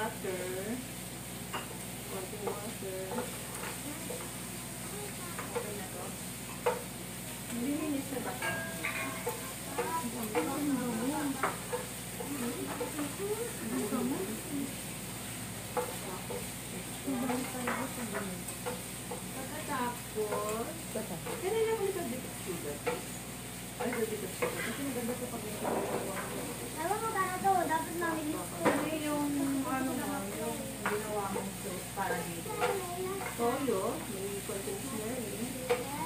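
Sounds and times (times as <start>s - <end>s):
shrimp sizzling in a frying pan: 0.0s - 36.0s
spatula knocking against pan: 6.6s - 6.9s, 8.2s - 13.2s, 15.7s - 16.5s, 17.2s - 21.9s, 22.8s - 23.1s, 23.8s - 25.0s.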